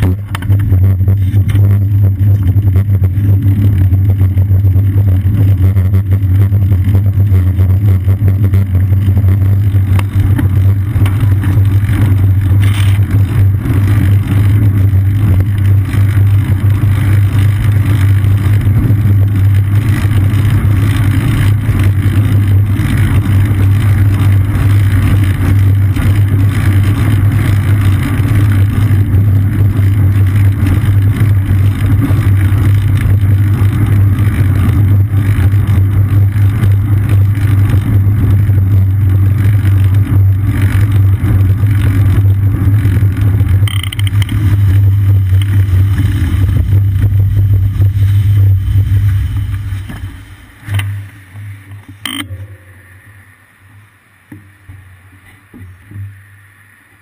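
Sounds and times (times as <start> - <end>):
wind and road rumble: 0.0 - 57.0.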